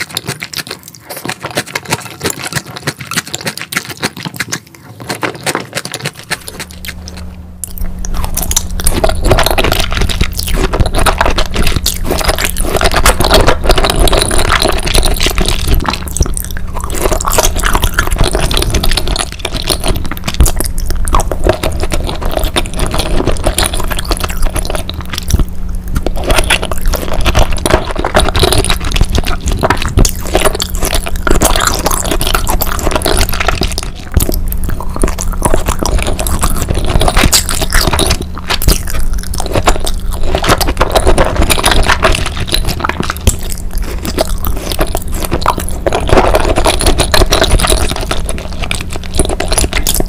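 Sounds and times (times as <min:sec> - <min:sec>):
wet chewing sounds: 0:00.0 - 0:50.0.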